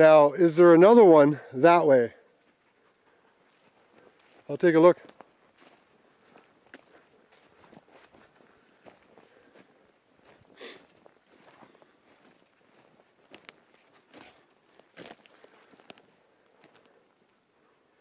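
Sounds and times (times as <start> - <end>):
footsteps crunching on twigs: 3.5 - 17.1
twigs snapping: 13.2 - 17.0.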